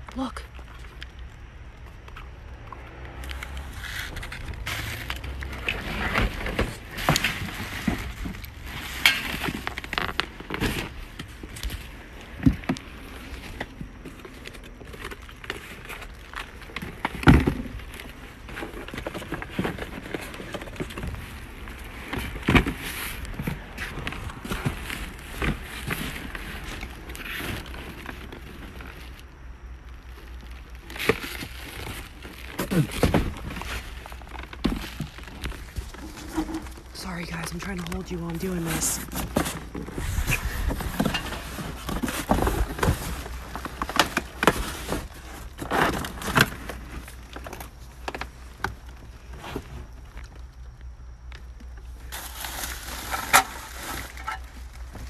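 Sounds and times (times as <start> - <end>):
cardboard and plastic crinkling: 0.1 - 55.0.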